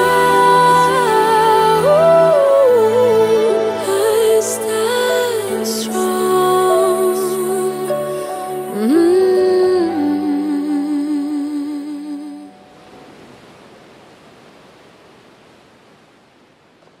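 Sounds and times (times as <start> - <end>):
sustained backing chords: 0.0 - 12.8
soft noise wash: 0.0 - 17.0.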